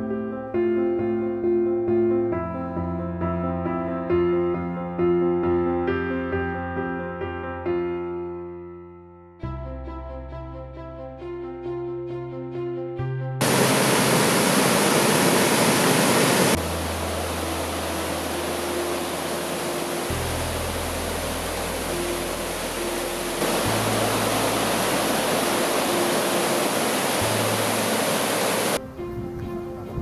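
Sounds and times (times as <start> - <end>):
river rushing through rapids: 13.4 - 28.8
background music: 16.6 - 30.0.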